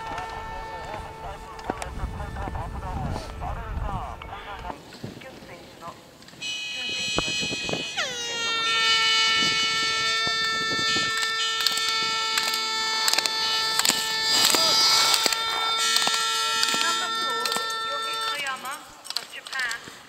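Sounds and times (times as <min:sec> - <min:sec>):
air horn blast: 0:00.0 - 0:05.2, 0:06.4 - 0:19.0
gate poles clacking: 0:09.3 - 0:19.8.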